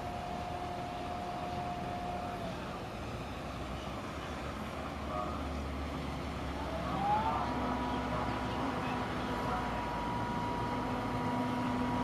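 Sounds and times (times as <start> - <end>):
ship engines droning: 0.0 - 12.0.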